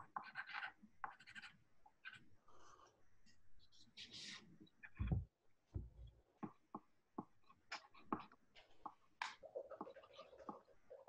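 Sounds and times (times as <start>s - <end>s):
handwriting on paper: 0.0s - 2.2s.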